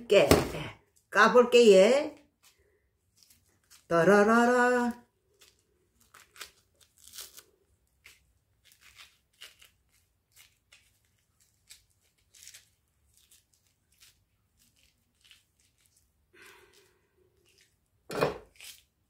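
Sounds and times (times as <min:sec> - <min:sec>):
peel tearing by hand: 0:05.4 - 0:16.0, 0:17.4 - 0:19.0.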